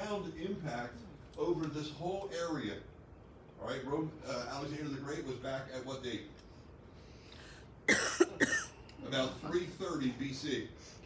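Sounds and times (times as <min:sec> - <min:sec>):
man coughing: 0:07.9 - 0:08.8.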